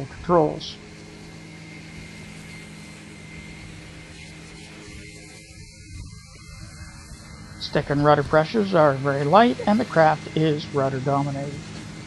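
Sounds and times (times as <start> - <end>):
ultralight engine droning: 0.0 - 12.0
hiss: 2.0 - 10.1.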